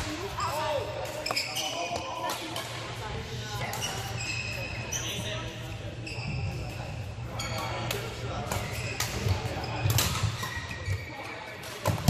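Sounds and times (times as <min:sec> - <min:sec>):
sneakers squeaking on court: 0:00.0 - 0:02.4, 0:03.6 - 0:11.6.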